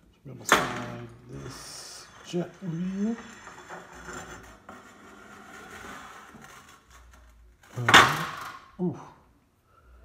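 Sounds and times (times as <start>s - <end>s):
plate rolling along metal rail: 0.6s - 8.6s.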